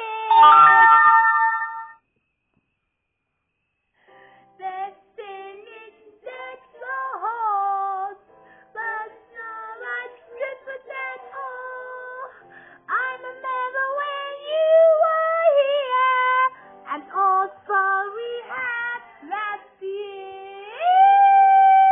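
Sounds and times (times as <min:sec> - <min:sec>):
song with female vocals on television: 0:00.0 - 0:01.6, 0:04.4 - 0:21.9.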